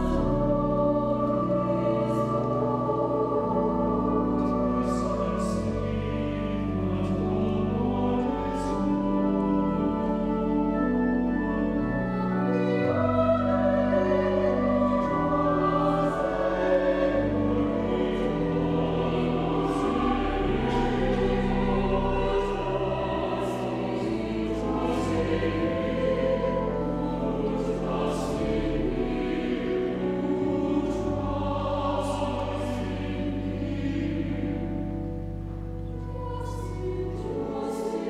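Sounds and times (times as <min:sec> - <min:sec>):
church choir singing: 0:00.0 - 0:38.0.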